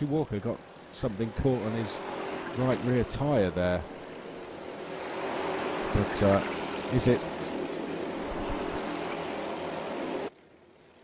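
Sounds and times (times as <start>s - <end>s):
go-kart engines racing: 0.0s - 11.0s.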